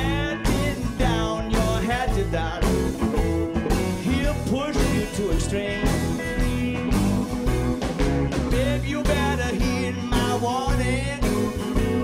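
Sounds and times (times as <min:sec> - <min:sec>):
blues band playing: 0:00.0 - 0:12.0.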